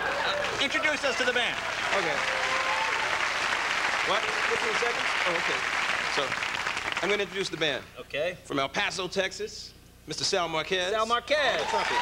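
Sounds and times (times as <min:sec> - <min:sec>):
audience applauding: 0:00.0 - 0:07.7, 0:11.6 - 0:12.0.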